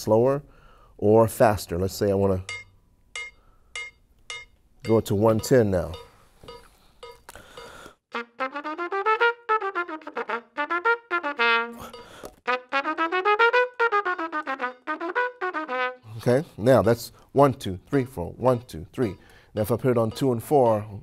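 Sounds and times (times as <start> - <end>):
metronome clicking: 2.4 - 7.9, 17.9 - 20.9
trumpet playing scales: 8.1 - 16.4.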